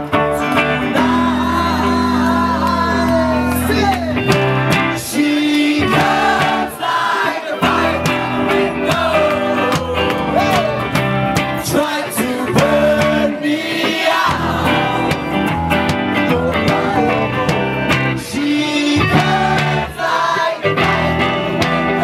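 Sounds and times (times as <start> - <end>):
live rock band with singer: 0.0 - 22.0.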